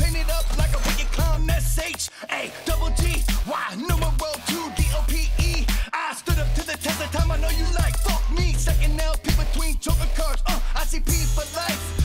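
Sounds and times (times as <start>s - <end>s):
deep bass notes: 0.0s - 1.8s, 2.7s - 6.6s, 7.2s - 12.0s
man rapping over a beat: 0.0s - 12.0s.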